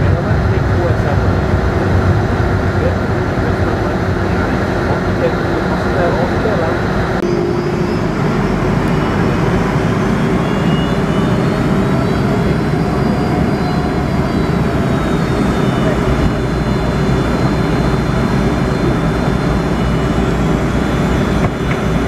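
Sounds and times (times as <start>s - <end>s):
jet engines rumbling with whine: 0.0s - 22.0s.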